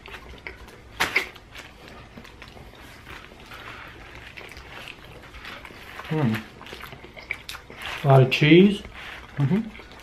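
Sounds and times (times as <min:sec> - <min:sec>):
wet mouth sounds: 0:00.0 - 0:08.1
close-up chewing: 0:00.0 - 0:10.0.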